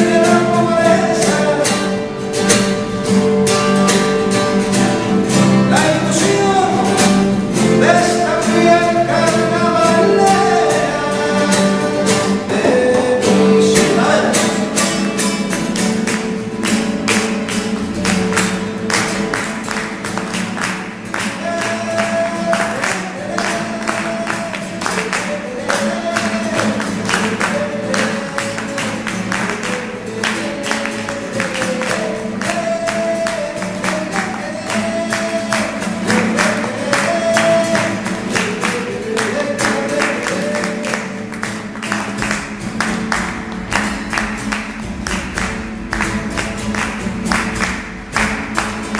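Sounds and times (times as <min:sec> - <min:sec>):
acoustic guitar strumming: 0:00.0 - 0:48.9.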